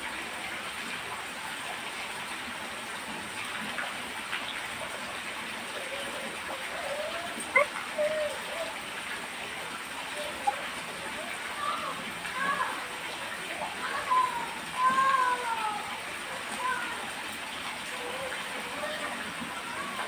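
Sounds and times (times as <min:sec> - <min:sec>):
falling water hissing: 0:00.0 - 0:20.0
faint voice-like sounds: 0:05.0 - 0:20.0.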